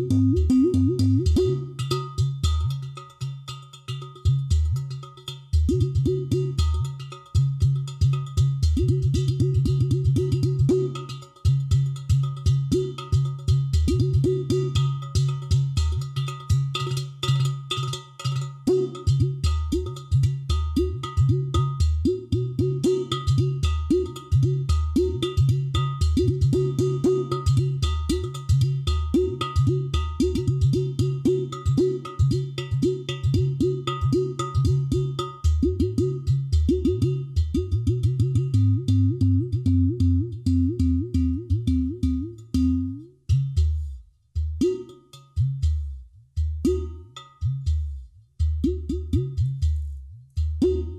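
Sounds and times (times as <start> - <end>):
clay pot drums played by hand: 0.0 - 50.9.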